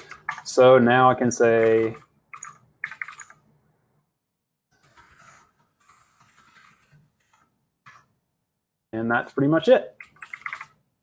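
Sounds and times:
quiet typing on keyboard: 0:00.0 - 0:00.6, 0:01.4 - 0:03.5, 0:09.9 - 0:10.8.

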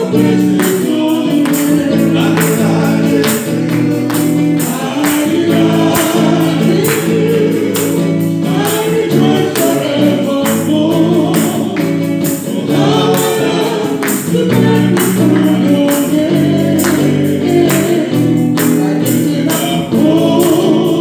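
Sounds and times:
electric guitar: 0:00.0 - 0:21.0
percussion beat: 0:00.0 - 0:21.0
woman singing gospel: 0:00.0 - 0:21.0.

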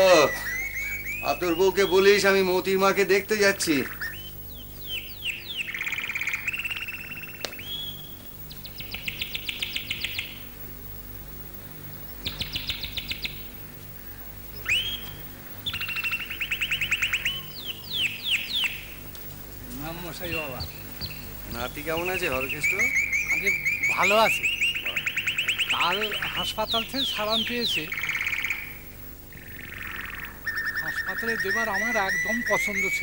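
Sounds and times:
faint steady hum: 0:00.0 - 0:33.0
songbirds singing: 0:00.0 - 0:33.0.

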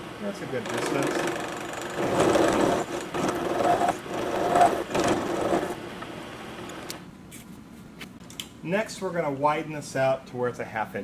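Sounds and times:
spindle running: 0:00.5 - 0:05.8
milling machine cutting metal: 0:00.6 - 0:05.8.

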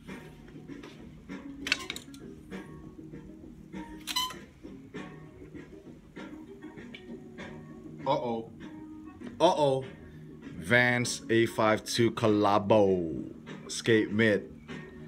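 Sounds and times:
background music: 0:00.0 - 0:15.0.

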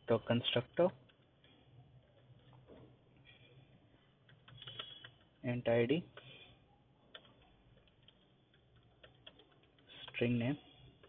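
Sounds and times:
computer keyboard keystrokes: 0:04.2 - 0:05.3, 0:07.1 - 0:10.2.

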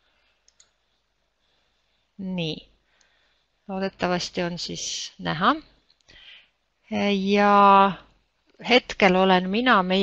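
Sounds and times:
faint computer mouse clicks: 0:00.4 - 0:00.8.

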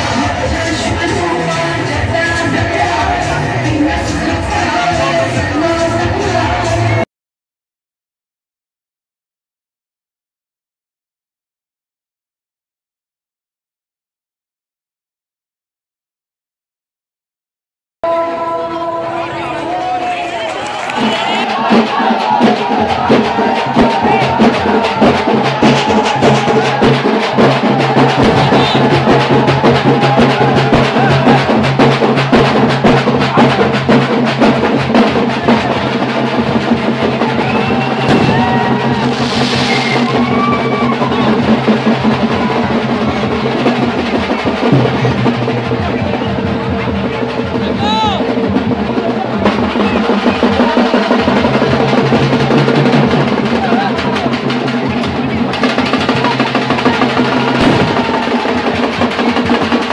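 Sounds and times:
crowd noise: 0:00.0 - 0:07.0, 0:18.0 - 0:59.9
fast dense drumming: 0:00.0 - 0:07.0, 0:21.0 - 0:59.9
loud horn note: 0:28.2 - 0:29.3
brief hiss: 0:38.9 - 0:40.2.

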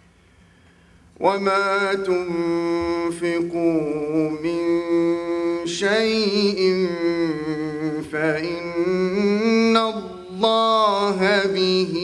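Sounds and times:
man chanting melodic recitation: 0:01.2 - 0:12.0.

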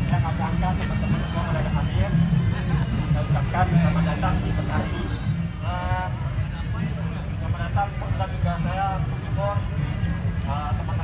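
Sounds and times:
man speaking through megaphone: 0:00.0 - 0:11.0.

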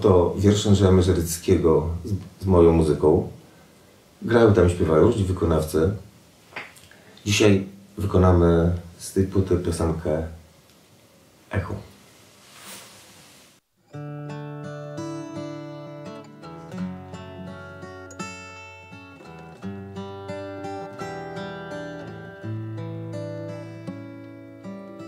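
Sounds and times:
acoustic guitar playing: 0:13.8 - 0:25.0.

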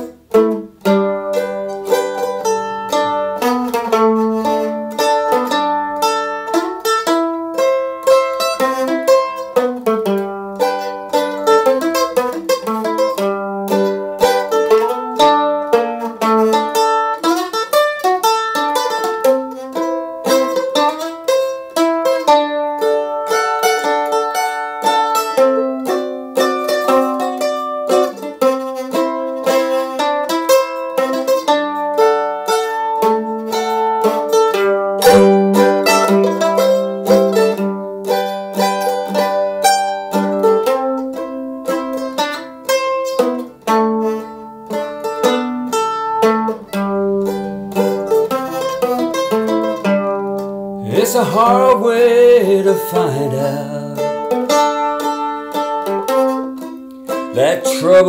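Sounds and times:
mandolin picking melody: 0:00.0 - 0:58.0.

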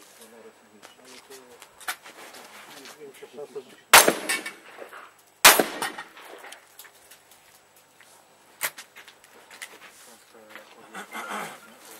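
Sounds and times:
rifle shot echoing: 0:04.0 - 0:06.6
sharp quiet crack: 0:04.0 - 0:07.4.

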